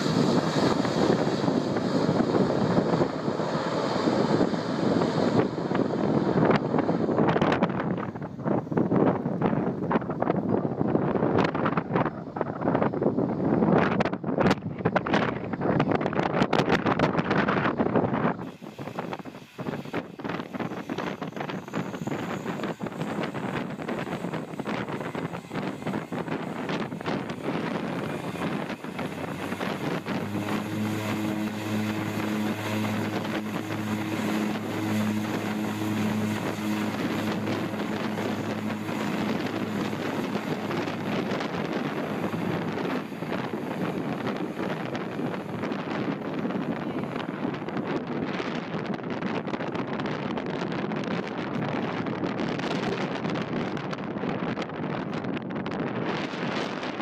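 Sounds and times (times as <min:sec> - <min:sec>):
low propeller hum: 0:00.0 - 0:57.0
small plane landing roll: 0:00.0 - 0:57.0
turboprop engines running: 0:00.0 - 0:57.0
wind buffeting microphone: 0:00.0 - 0:57.0.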